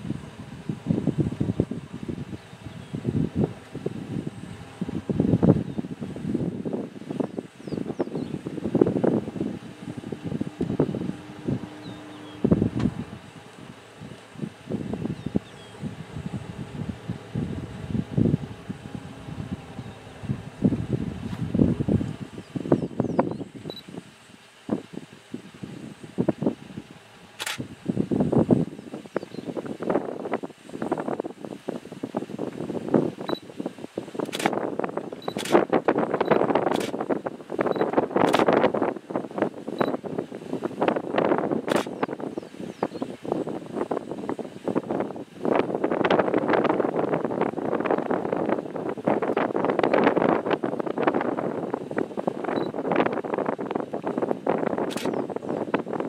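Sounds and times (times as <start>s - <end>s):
wind buffeting microphone: 0.0s - 56.0s
sharp click: 27.4s - 27.6s.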